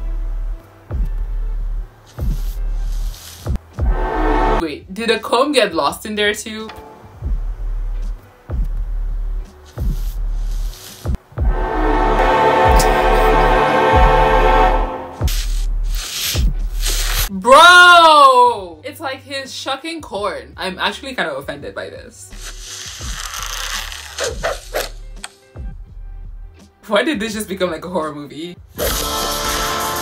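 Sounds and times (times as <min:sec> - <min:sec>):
music with low held note: 0:00.0 - 0:05.1, 0:06.5 - 0:16.8, 0:24.4 - 0:28.0
deep booming hits: 0:03.8 - 0:04.6, 0:11.2 - 0:15.4
low drone: 0:03.8 - 0:04.6, 0:11.4 - 0:15.5
sustained chords: 0:03.8 - 0:04.6, 0:11.4 - 0:15.3.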